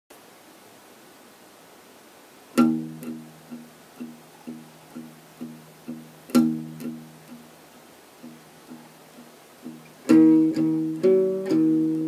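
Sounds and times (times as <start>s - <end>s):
faint hiss: 0.1s - 12.0s
acoustic guitar chord: 2.6s - 7.5s, 9.6s - 12.0s
picked guitar notes: 2.6s - 7.6s, 8.2s - 12.0s.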